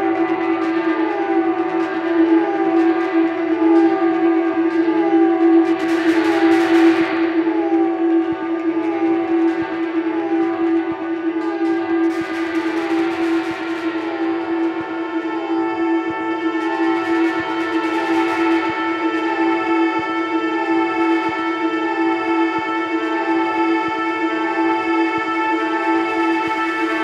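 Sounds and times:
falling siren-like pitch figure: 0:00.0 - 0:23.9
loud sustained drone: 0:00.0 - 0:27.0.

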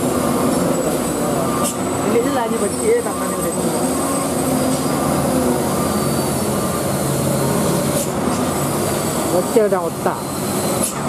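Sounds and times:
truck diesel engine under load: 0:00.0 - 0:11.0.

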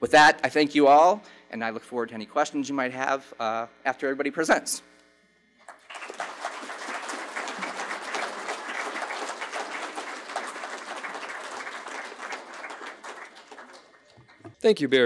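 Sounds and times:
audience applauding: 0:05.6 - 0:14.6.

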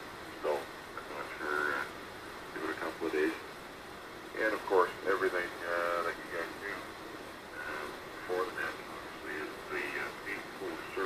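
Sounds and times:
radio band noise hiss: 0:00.0 - 0:11.0.

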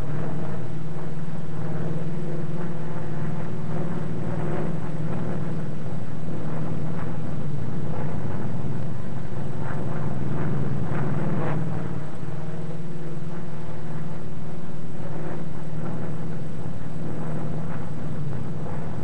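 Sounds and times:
propeller aircraft engine drone: 0:00.0 - 0:19.0.

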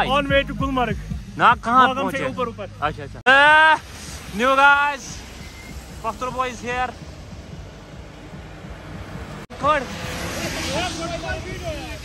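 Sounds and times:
street noise on wet road: 0:00.0 - 0:12.0.

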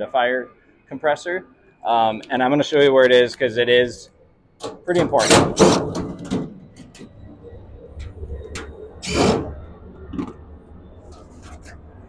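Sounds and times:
low hum: 0:00.0 - 0:12.0
metal panel rattling: 0:04.6 - 0:07.4, 0:08.0 - 0:10.4.

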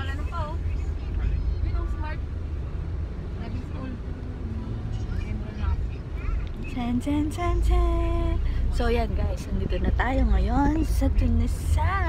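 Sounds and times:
car engine rumble inside cabin: 0:00.0 - 0:12.0
road noise: 0:00.0 - 0:12.0.

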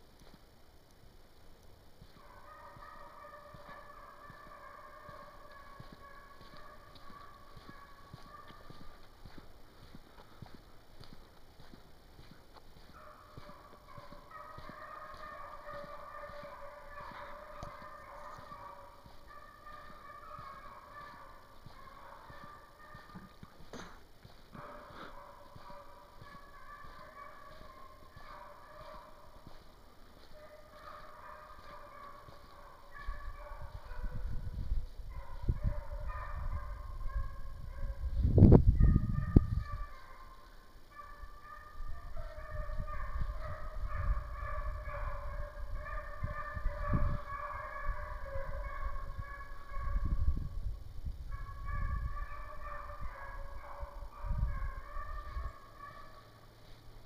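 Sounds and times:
hounds baying: 0:02.0 - 0:38.2, 0:38.8 - 0:50.4, 0:51.3 - 0:57.0
wind buffeting microphone: 0:33.1 - 0:39.9, 0:41.9 - 0:55.5.

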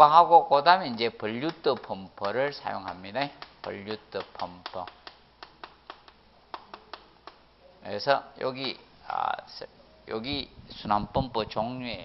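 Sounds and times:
chalk tapping on blackboard: 0:00.9 - 0:07.5.

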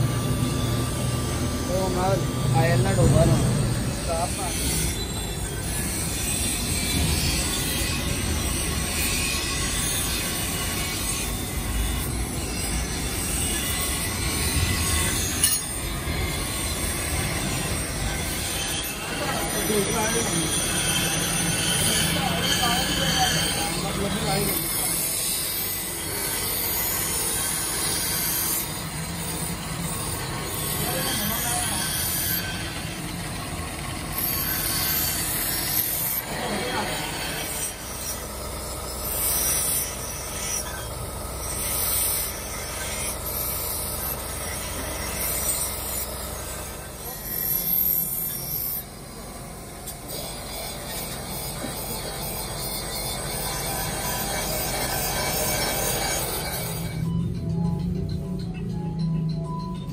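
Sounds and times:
belt grinder grinding steel: 0:00.0 - 0:59.9.

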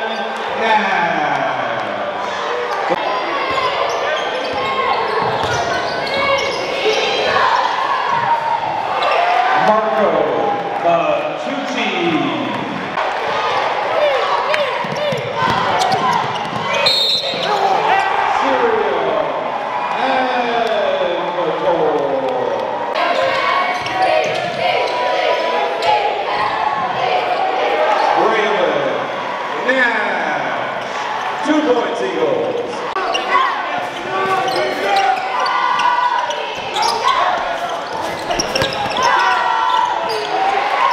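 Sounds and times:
hum of crowd voices: 0:00.0 - 0:40.9
sneakers squeaking on hardwood: 0:03.4 - 0:07.4, 0:14.8 - 0:17.8, 0:32.6 - 0:40.6
basketball dribbling: 0:14.8 - 0:17.5, 0:38.0 - 0:39.3.

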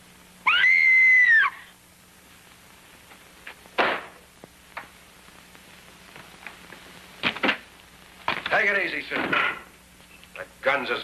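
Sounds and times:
woman screaming: 0:00.4 - 0:01.7.

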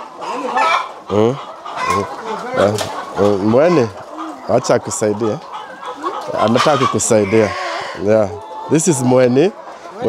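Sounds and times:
chickens clucking: 0:00.0 - 0:10.0.

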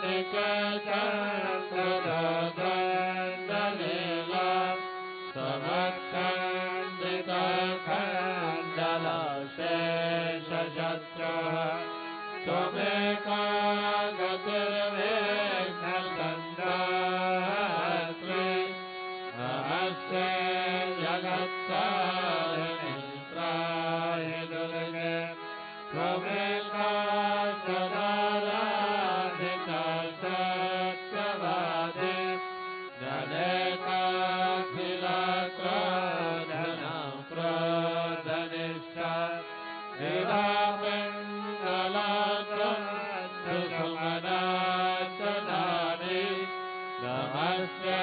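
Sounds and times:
devotional chanting: 0:00.0 - 0:48.0.

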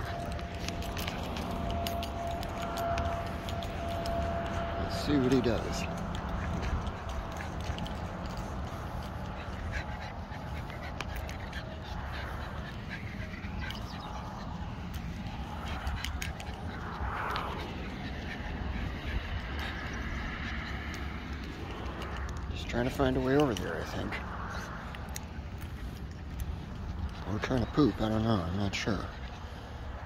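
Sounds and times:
dog sniffing: 0:00.0 - 0:22.3
low rumble: 0:00.0 - 0:22.5.

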